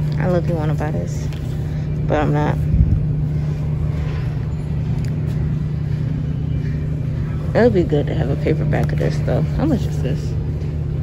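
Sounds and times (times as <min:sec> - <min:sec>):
rushing background noise: 0:00.0 - 0:11.0
steady low hum: 0:00.0 - 0:11.0.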